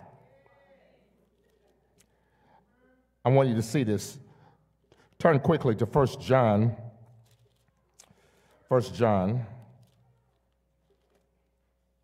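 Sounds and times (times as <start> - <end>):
man's voice: 3.3 - 4.2, 5.2 - 6.9, 8.7 - 9.6.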